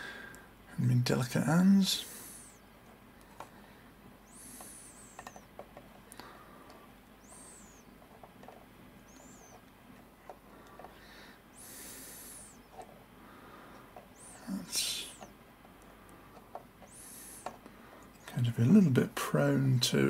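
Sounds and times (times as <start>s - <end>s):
high whistling squeaks: 7.2s - 7.9s, 9.1s - 9.6s.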